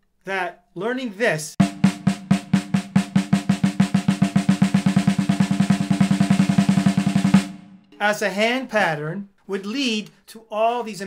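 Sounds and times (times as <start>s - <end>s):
snare drum roll: 1.6s - 7.8s.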